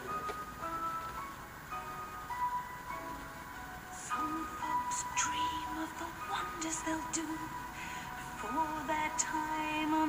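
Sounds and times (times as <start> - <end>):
slow instrumental music on television: 0.0 - 10.0.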